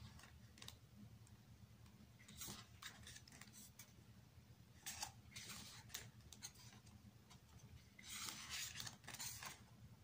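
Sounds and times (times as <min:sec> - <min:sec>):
book pages turning: 0:02.2 - 0:04.0, 0:04.8 - 0:09.7.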